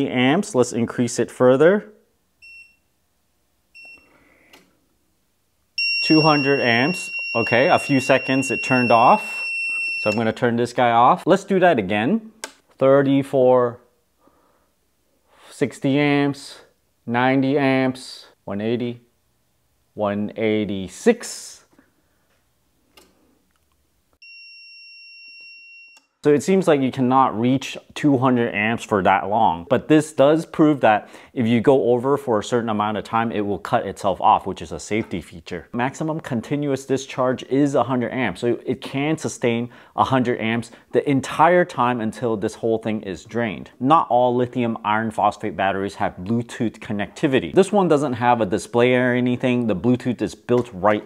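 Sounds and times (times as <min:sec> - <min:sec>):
faint background noise: 0:00.0 - 0:24.2, 0:26.0 - 0:51.0
steady high-pitched alarm tone: 0:05.8 - 0:10.3.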